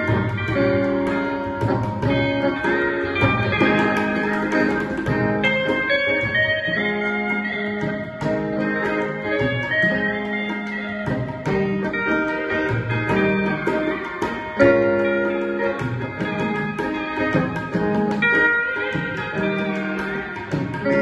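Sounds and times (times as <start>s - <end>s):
electric guitar: 0.0s - 21.0s
electric steel guitar melody: 0.0s - 21.0s.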